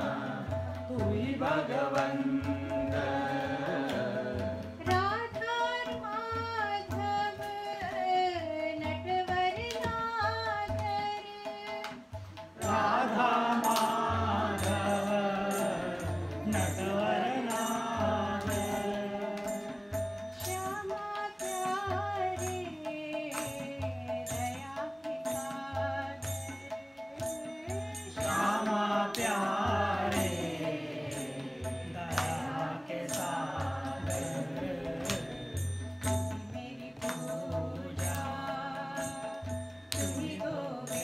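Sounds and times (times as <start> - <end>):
sharp percussive strikes: 0.0 - 8.2, 8.8 - 41.0
devotional chanting with music: 0.0 - 41.0.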